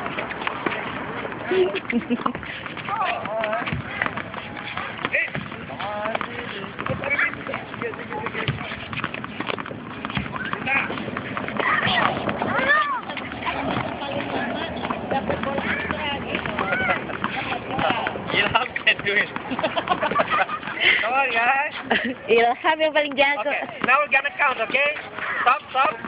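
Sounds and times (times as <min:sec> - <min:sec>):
tennis balls bouncing off rackets: 0:00.0 - 0:26.0
children's voices and squeals: 0:11.6 - 0:14.7, 0:16.6 - 0:17.1.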